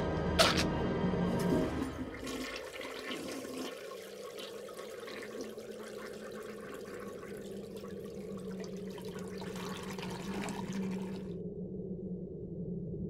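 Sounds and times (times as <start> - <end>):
toilet flushing water: 1.3 - 11.3.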